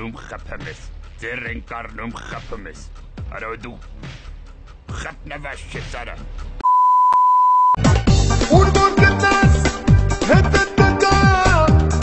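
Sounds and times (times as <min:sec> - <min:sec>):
music with deep bass hits: 0:00.0 - 0:06.6
censor bleep: 0:06.6 - 0:07.8.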